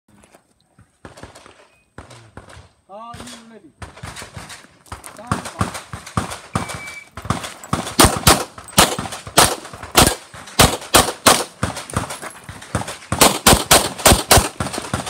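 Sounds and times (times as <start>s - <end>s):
rapid pistol shots: 1.0s - 15.0s
shot timer beep: 6.6s - 7.1s.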